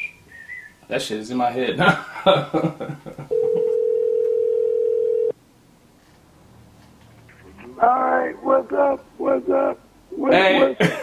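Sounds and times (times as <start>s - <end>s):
man laughing: 1.8s - 3.8s, 10.4s - 11.0s
telephone ringback tone: 3.3s - 5.3s.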